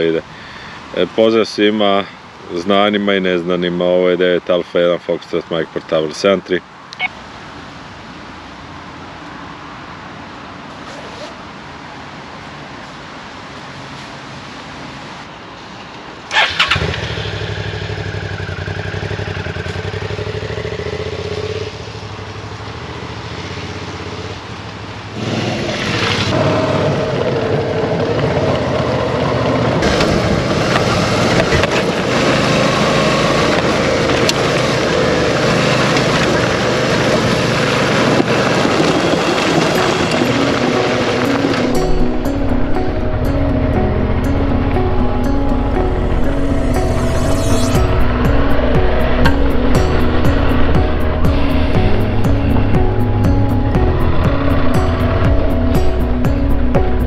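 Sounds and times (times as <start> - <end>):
motorcycle engine starting and idling: 16.3 - 24.2, 25.1 - 57.0.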